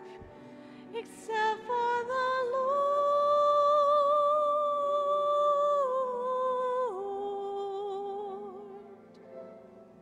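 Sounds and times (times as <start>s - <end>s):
person singing a hymn: 0.0s - 9.6s.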